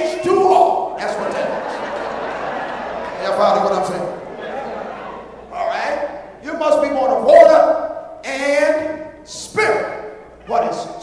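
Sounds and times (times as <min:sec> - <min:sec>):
man preaching through a microphone: 0:00.0 - 0:01.6, 0:03.2 - 0:04.2, 0:05.5 - 0:11.0.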